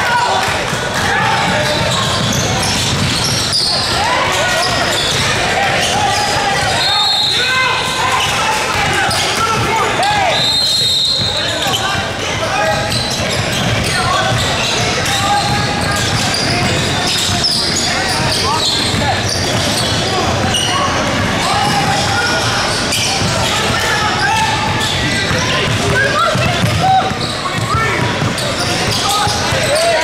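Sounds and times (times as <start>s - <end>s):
many indistinct voices: 0.0s - 30.0s
basketball dribbled on hardwood: 0.7s - 3.7s
sneaker squeaks on floor: 1.3s - 30.0s.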